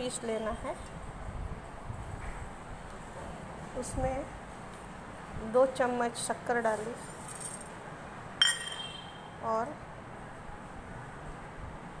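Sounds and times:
steel spoon clinking on jar: 8.4s - 9.2s.

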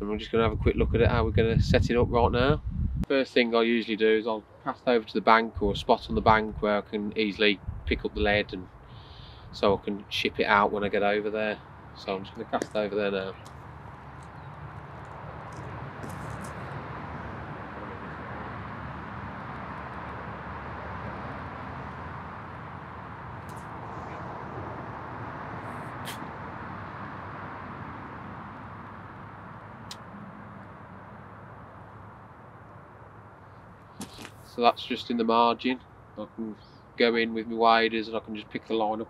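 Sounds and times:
rushing outdoor background noise: 0.0s - 39.0s.

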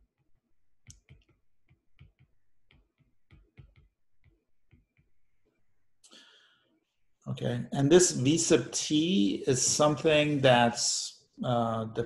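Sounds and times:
stylus tapping on glass screen: 0.8s - 5.6s.

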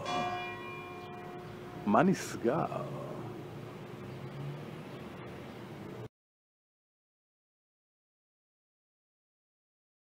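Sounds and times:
church bell ringing: 0.0s - 3.5s.

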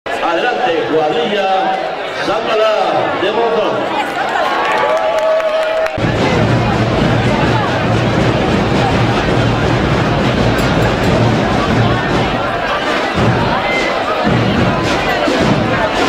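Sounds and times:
crowd voices: 0.1s - 16.0s
bass drum booming: 6.0s - 16.0s
snare drum roll: 6.0s - 16.0s.

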